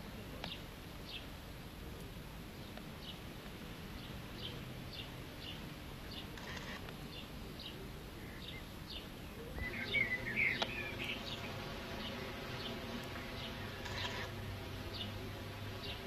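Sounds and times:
birdsong burst: 4.4s - 15.2s.

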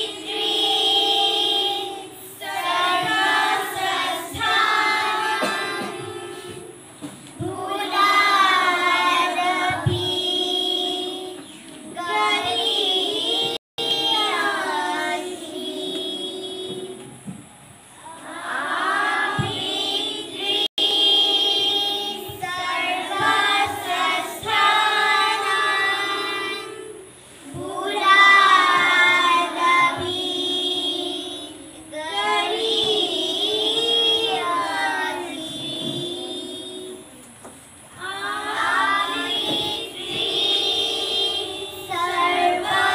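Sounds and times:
children singing a prayer song: 0.0s - 42.9s.

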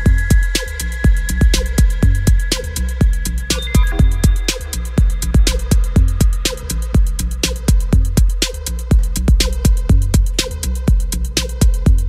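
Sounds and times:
deep continuous bass: 0.0s - 12.0s
fast ticking hi-hats: 0.0s - 12.0s
kick drum: 0.0s - 12.0s.

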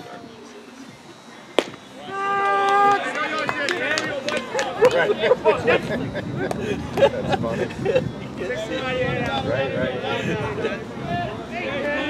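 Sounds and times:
other voices: 0.0s - 12.0s
baseball popping into mitt: 1.6s - 1.8s
umpire shouting: 1.9s - 5.8s, 8.2s - 12.0s.

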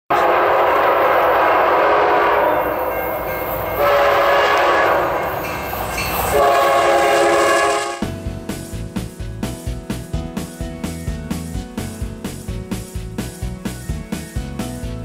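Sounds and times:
locomotive air horn blasts: 0.1s - 5.4s, 6.3s - 8.2s
train rumble: 0.1s - 15.0s.

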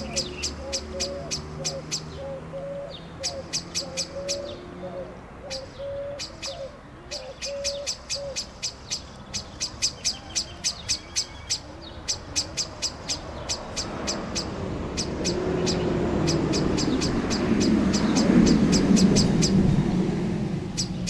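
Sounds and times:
blackbird chinking calls: 0.0s - 19.7s, 20.7s - 21.0s.

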